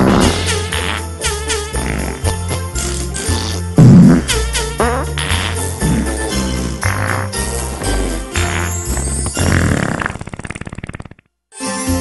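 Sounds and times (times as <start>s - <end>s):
christmas music: 0.0s - 10.0s, 11.5s - 12.0s
cartoon fart sound effect: 0.0s - 11.3s.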